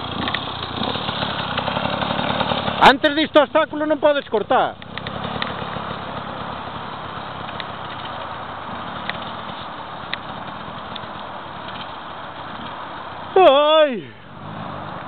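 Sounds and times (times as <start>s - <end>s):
dirt bike engine running: 0.0s - 15.0s
man shouting: 13.3s - 14.2s.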